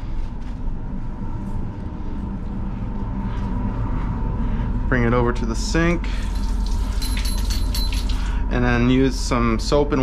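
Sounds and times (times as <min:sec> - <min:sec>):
low room hum: 0:00.0 - 0:10.0
water running at a sink: 0:06.2 - 0:08.4.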